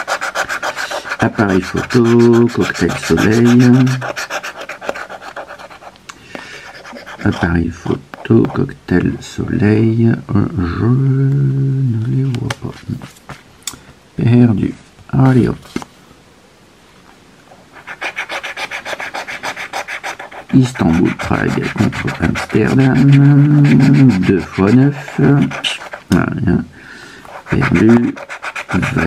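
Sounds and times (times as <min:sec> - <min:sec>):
scratching lottery ticket coating: 0:00.0 - 0:05.9, 0:06.7 - 0:07.5, 0:17.8 - 0:26.1, 0:27.3 - 0:29.0
metal scraper rasping lottery ticket: 0:27.4 - 0:29.0.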